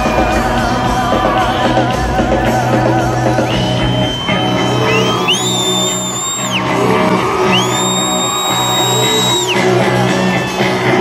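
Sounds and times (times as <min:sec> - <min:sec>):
live rock band: 0:00.0 - 0:11.0.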